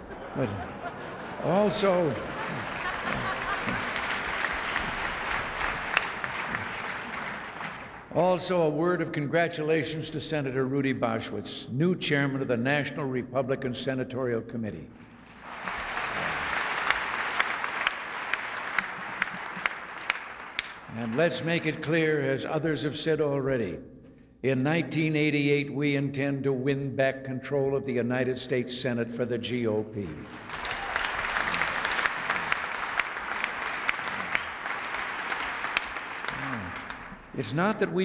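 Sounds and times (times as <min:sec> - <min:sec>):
audience applauding: 0:00.0 - 0:08.2, 0:15.0 - 0:21.8, 0:30.1 - 0:38.0
single sharp claps: 0:02.5 - 0:08.0, 0:15.4 - 0:20.9, 0:30.3 - 0:37.3.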